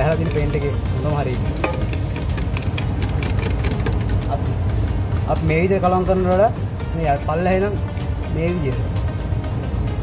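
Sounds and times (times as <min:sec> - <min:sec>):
stick scraping a metal paint can: 0:00.0 - 0:04.4.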